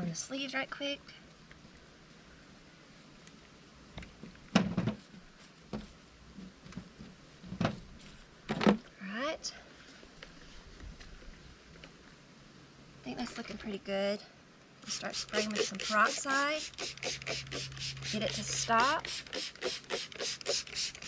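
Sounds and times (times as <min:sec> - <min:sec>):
squeeze bottle spluttering: 0:14.8 - 0:21.0.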